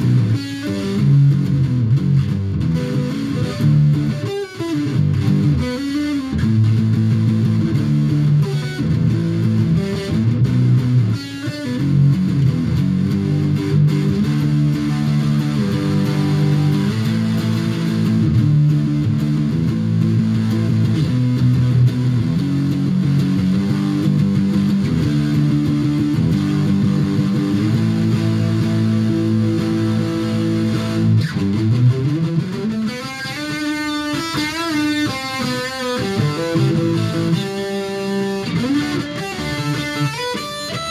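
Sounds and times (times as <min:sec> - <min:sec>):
electric guitar chords strummed: 0:00.0 - 0:40.9.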